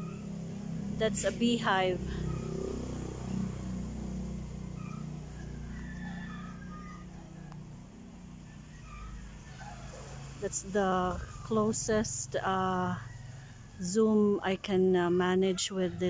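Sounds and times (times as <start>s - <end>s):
low motor hum: 0.0s - 16.0s.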